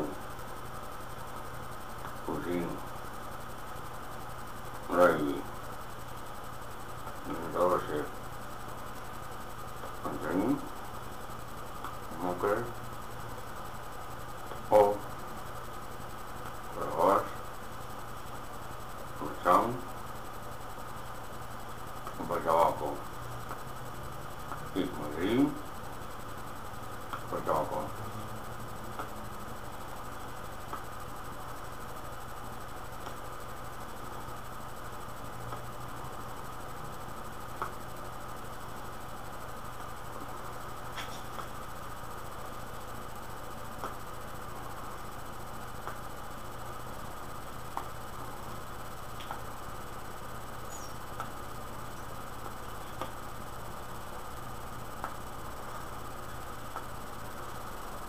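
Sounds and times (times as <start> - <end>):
steady hum and hiss: 0.0 - 58.0.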